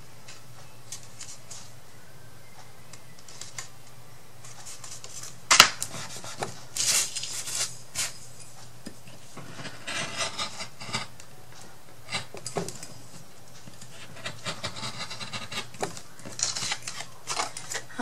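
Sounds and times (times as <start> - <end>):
paper rustling on cutting mat: 4.4 - 8.2.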